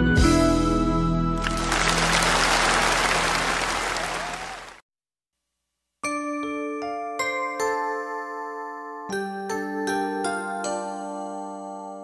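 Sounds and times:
audience applause: 0:01.4 - 0:04.8.

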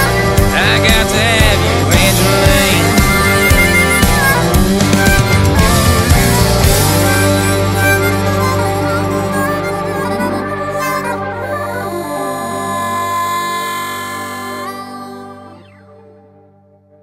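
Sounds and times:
country band sustained chord: 0:00.0 - 0:16.7
harmonica long note: 0:00.0 - 0:16.7.

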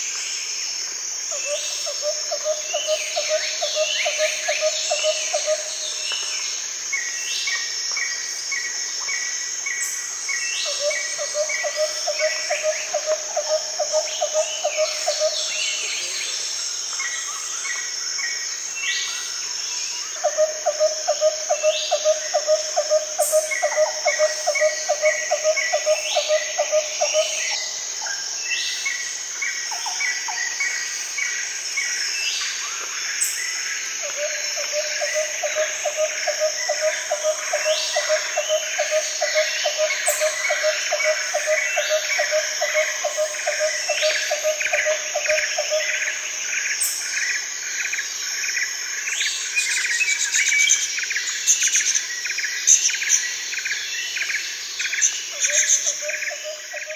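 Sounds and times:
high insect drone: 0:00.0 - 0:56.9.

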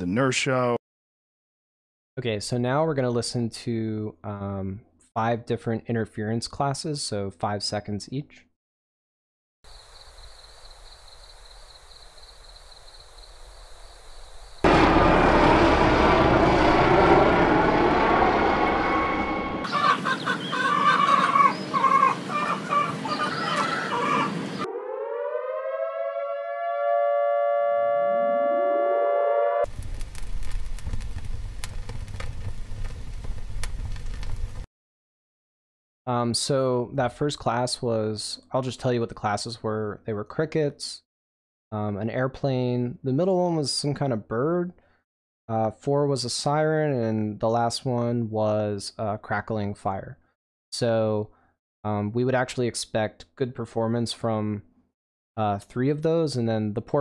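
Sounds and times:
crickets chirping: 0:09.7 - 0:14.6
fire crackling: 0:14.6 - 0:19.4, 0:29.7 - 0:34.7
siren wailing: 0:14.7 - 0:20.0, 0:20.6 - 0:29.7
loud airplane: 0:14.7 - 0:20.4, 0:21.7 - 0:24.7
bird calling: 0:19.6 - 0:24.7.

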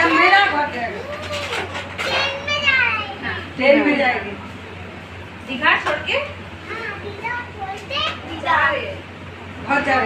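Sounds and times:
children talking: 0:00.0 - 0:05.0, 0:05.8 - 0:10.0.

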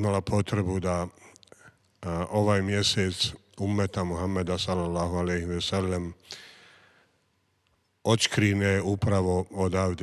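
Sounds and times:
man inhaling into microphone: 0:06.2 - 0:07.2.

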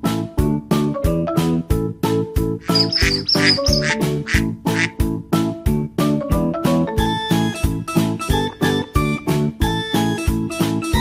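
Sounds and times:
cheerful background music: 0:00.0 - 0:11.0
cartoon duck quacks: 0:02.6 - 0:04.9.

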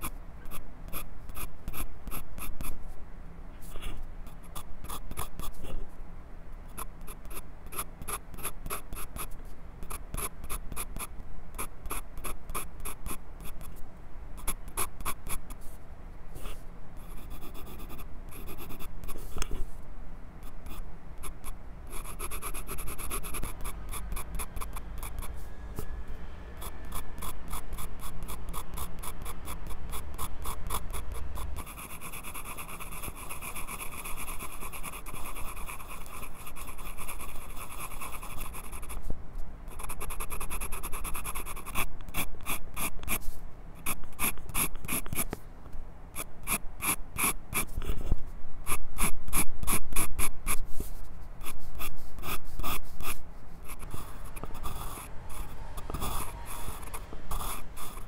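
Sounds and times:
pencil scratching on paper: 0:06.7 - 0:13.8, 0:16.4 - 0:19.8, 0:20.4 - 0:25.5, 0:26.6 - 0:39.0, 0:39.7 - 0:45.3, 0:46.2 - 0:58.0.

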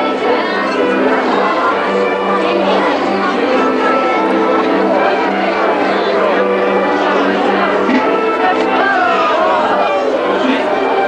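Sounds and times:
crowd voices: 0:00.0 - 0:11.0
music with long held notes: 0:00.0 - 0:11.0.

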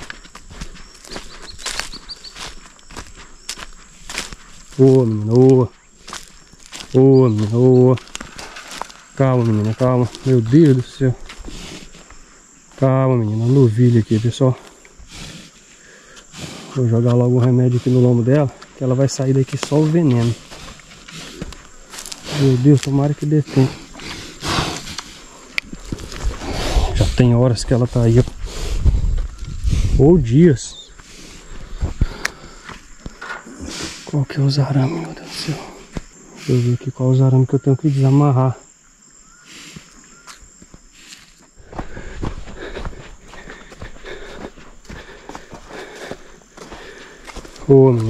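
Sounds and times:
footsteps on dry ground: 0:00.0 - 0:36.7, 0:39.5 - 0:48.0
cow blowing heavy breath: 0:11.2 - 0:12.5, 0:14.6 - 0:16.8, 0:20.4 - 0:22.4, 0:23.4 - 0:27.3, 0:28.3 - 0:30.0, 0:30.9 - 0:34.1, 0:39.4 - 0:40.0, 0:40.9 - 0:47.6.

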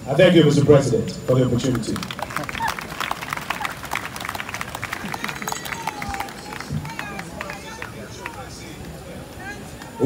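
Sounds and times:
voices talking: 0:00.0 - 0:10.0
crowd applauding: 0:01.3 - 0:09.6.

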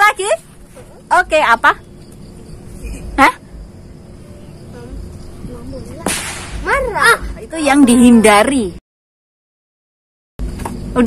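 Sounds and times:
insects chirring: 0:00.0 - 0:08.8, 0:10.4 - 0:11.0.

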